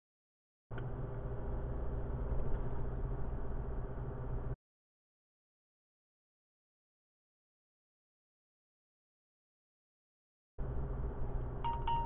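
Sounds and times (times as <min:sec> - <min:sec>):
truck engine rumble inside cab: 0:00.7 - 0:04.6, 0:10.6 - 0:12.0
phone alert chime: 0:11.6 - 0:12.0.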